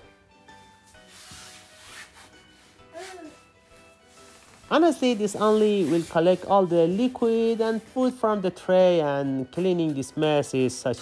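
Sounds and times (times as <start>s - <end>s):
quiet background music: 0.0s - 11.0s
fabric rustling: 0.5s - 8.2s.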